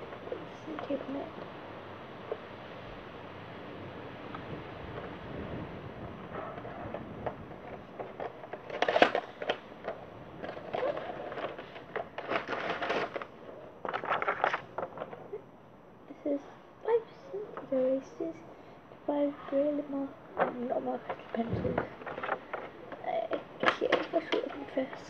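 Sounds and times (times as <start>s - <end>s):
packaging crackling and rustling: 6.2s - 15.6s, 19.2s - 25.0s.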